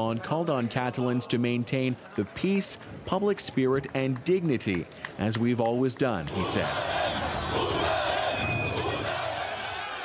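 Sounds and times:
large crowd shouting: 6.3s - 10.0s.

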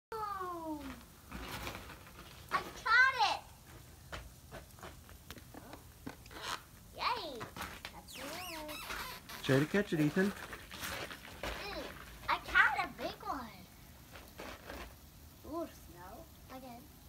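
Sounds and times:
children squealing and crying: 8.0s - 9.4s.

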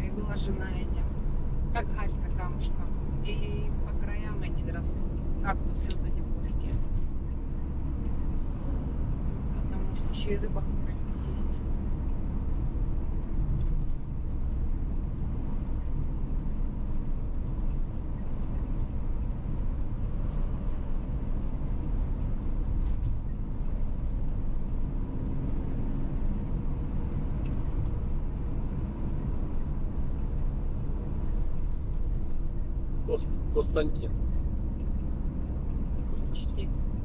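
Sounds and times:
car engine running: 0.0s - 37.0s
tyres on asphalt: 0.0s - 37.0s.

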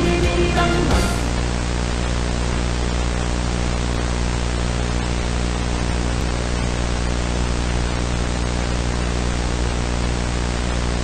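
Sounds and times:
low buzzing hum: 0.0s - 11.0s
tape hiss: 0.0s - 11.0s.

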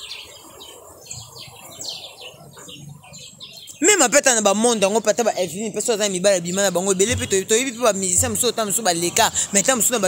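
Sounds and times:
birds chirping: 0.0s - 10.0s
people talking: 3.8s - 10.0s.

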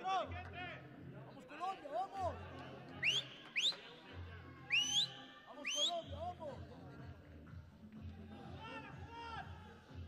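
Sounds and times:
faint backing music: 0.0s - 10.0s.

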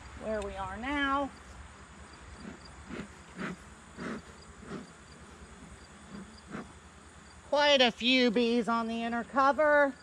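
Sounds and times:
bellows puffing air: 2.3s - 6.9s.

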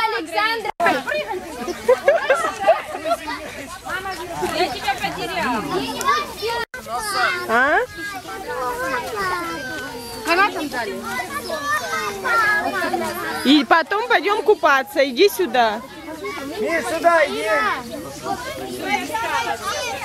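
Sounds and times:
adults talking: 0.0s - 20.0s
children shouting and chattering: 0.0s - 20.0s.

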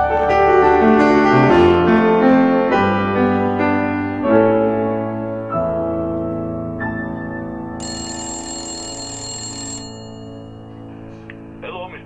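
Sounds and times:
soft piano music: 0.0s - 12.0s
old bell telephone ringing: 7.8s - 10.9s.

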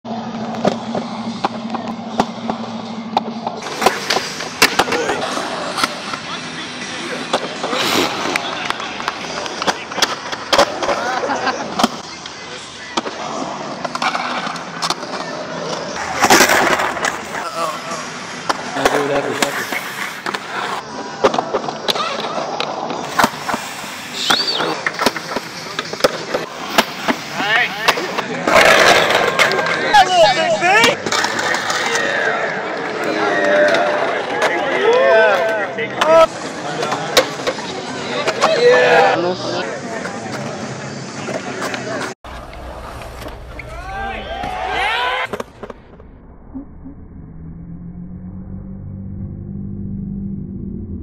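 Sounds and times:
skateboard wheels rolling on concrete: 0.1s - 46.0s.

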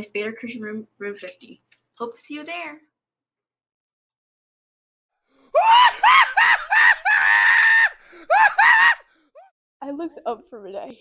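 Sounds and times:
person screaming: 5.5s - 9.1s.

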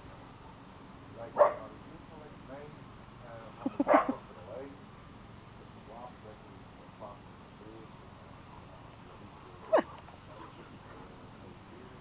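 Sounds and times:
dog barking: 1.4s - 1.7s, 3.8s - 4.2s.

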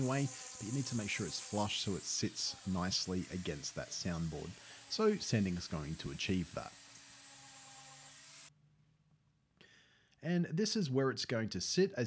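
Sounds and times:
electric sander on wood: 0.0s - 8.5s.

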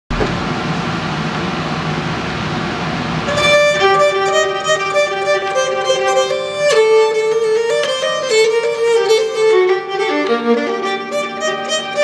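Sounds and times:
steady rushing noise: 0.1s - 8.1s.

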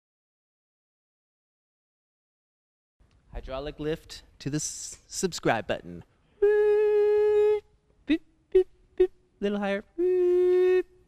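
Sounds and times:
person humming steady note: 6.4s - 9.2s, 9.9s - 11.0s.

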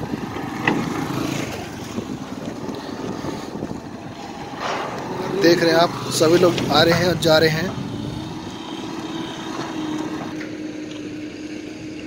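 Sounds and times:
small motorcycle engines running: 0.0s - 12.0s.

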